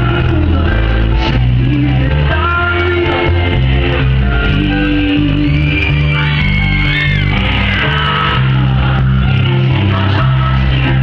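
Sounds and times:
man singing into a microphone: 0:00.0 - 0:06.9, 0:07.5 - 0:11.0
amplified live band music: 0:00.0 - 0:11.0
sustained bass notes: 0:00.0 - 0:11.0.

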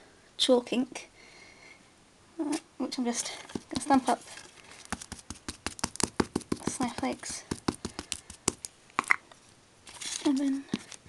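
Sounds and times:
rubber stamp tapping: 0:04.9 - 0:09.2.

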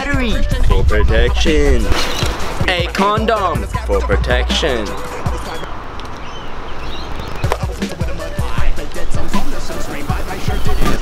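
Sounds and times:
hip hop music: 0:00.0 - 0:11.0.

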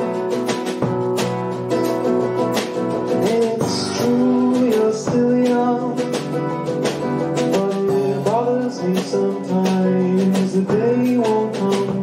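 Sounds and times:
acoustic guitar strummed: 0:00.0 - 0:12.0.

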